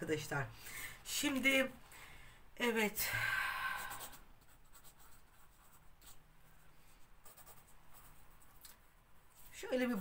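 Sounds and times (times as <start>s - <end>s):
pen scratching on paper: 3.9s - 6.2s, 7.2s - 8.6s.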